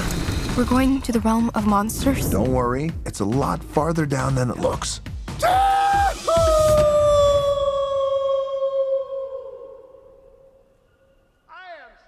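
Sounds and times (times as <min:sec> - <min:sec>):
man yelling long and high: 0:05.4 - 0:09.5.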